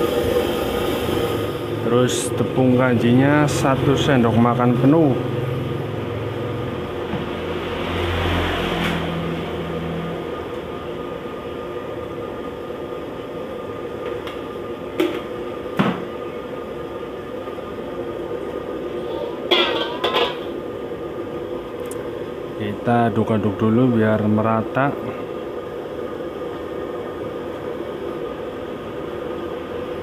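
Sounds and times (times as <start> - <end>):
faint hum: 0.0 - 7.9, 9.2 - 30.0
gas burner roaring: 0.0 - 30.0.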